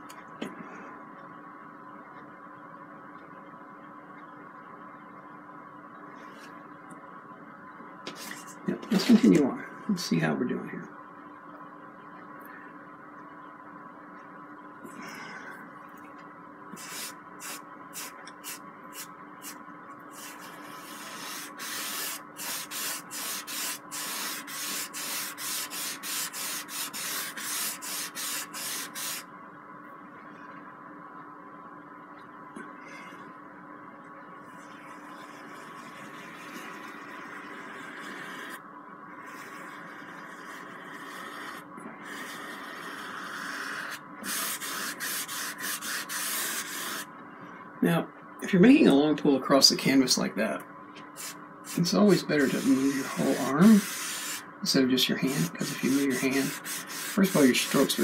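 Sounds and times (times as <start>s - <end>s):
brush rubbing across canvas: 20.2s - 29.2s, 39.2s - 47.0s, 51.2s - 54.4s, 55.2s - 58.0s.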